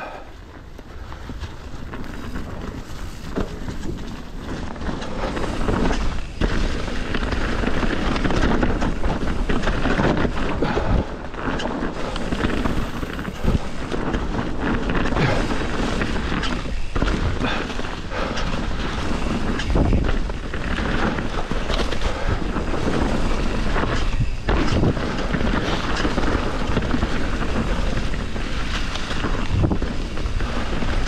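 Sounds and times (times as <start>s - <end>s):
bike rattling and knocking: 0.0s - 31.0s
tyres rumbling over dirt: 0.0s - 31.0s
wind buffeting microphone: 0.0s - 31.0s.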